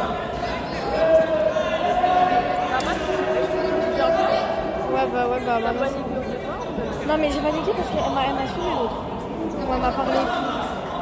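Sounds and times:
indistinct voices in hall: 0:00.0 - 0:11.0.

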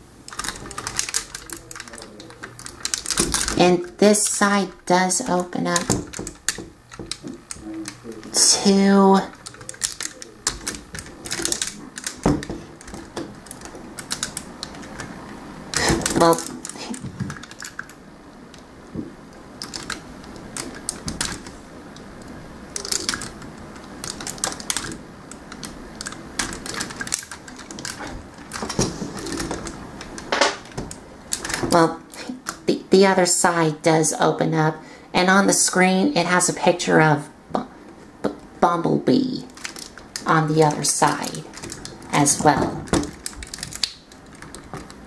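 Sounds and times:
tool clicking on plastic: 0:05.3 - 0:15.1.

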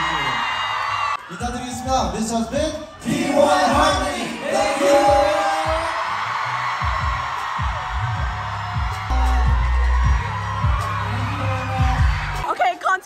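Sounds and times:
crowd screaming and cheering: 0:00.0 - 0:12.8
live pop music with bass: 0:02.6 - 0:12.6
person singing: 0:03.0 - 0:06.0.

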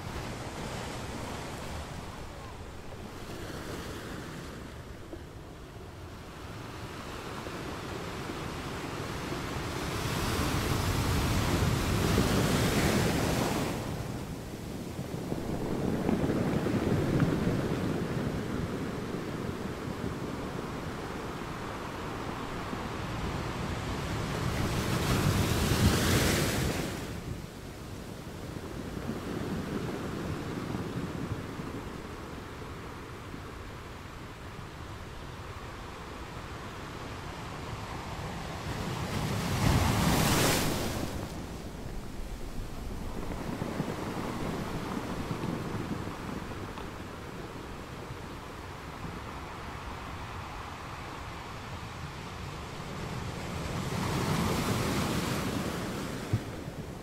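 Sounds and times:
surf breaking on pebbly shore: 0:10.0 - 0:23.6, 0:38.7 - 0:48.3.

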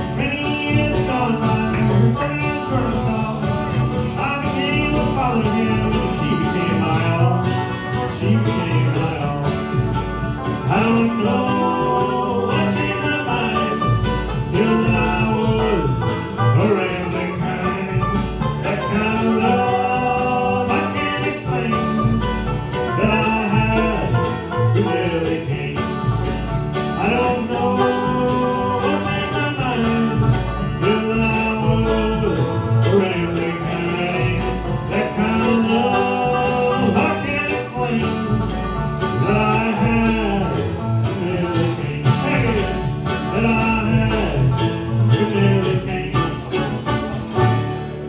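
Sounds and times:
bluegrass band playing: 0:00.0 - 0:48.0.

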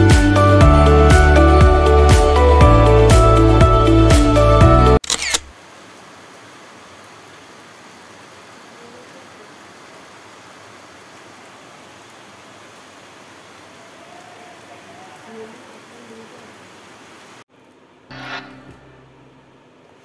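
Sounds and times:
camera shutter click: 0:05.0 - 0:05.5
rain hissing: 0:05.5 - 0:17.5.

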